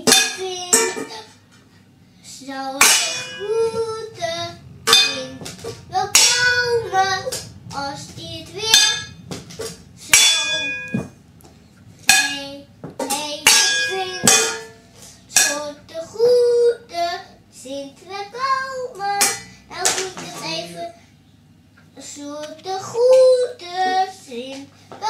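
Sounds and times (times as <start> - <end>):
metal pots banged like drums: 0.0 - 1.3, 2.8 - 3.8, 4.7 - 11.2, 12.1 - 14.8
child singing and chanting: 0.0 - 1.4, 2.2 - 9.2, 12.2 - 14.7, 15.3 - 21.0, 21.9 - 25.0.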